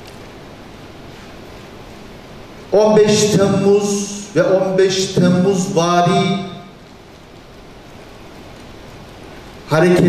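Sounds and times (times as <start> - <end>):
steady hiss of room tone: 0.0 - 10.0.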